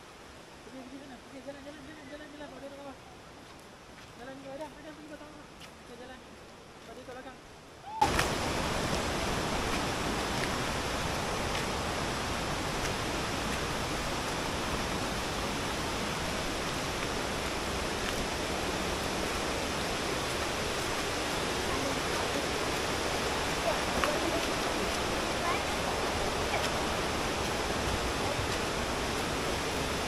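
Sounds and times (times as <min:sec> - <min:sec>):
river water rushing over rocks: 0:00.1 - 0:30.0.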